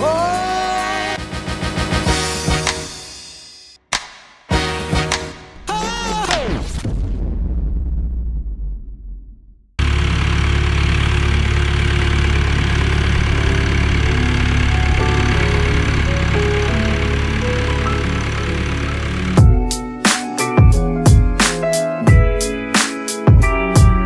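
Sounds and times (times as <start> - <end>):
tractor engine running: 9.8 - 21.2
strummed guitar music: 12.8 - 24.0.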